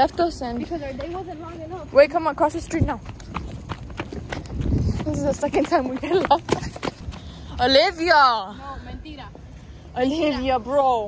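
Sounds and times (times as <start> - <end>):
quick footsteps on pavement: 0.0 - 11.0.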